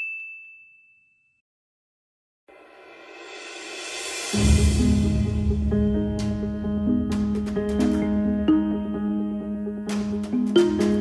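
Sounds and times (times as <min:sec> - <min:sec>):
high ding chime: 0:00.0 - 0:01.4.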